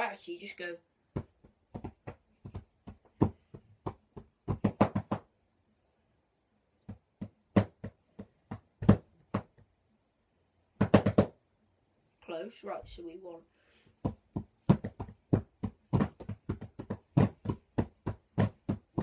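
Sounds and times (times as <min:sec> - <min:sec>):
drumsticks striking practice pillows: 0:01.1 - 0:05.3, 0:06.9 - 0:09.6, 0:10.8 - 0:11.4, 0:14.0 - 0:19.0.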